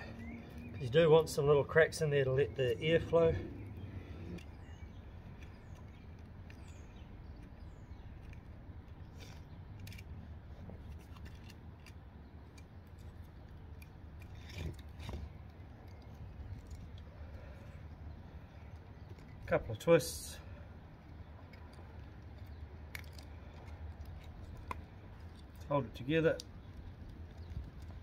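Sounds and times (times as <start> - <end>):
low background rumble: 0.0 - 28.0
wire scraping against wood: 0.0 - 28.0.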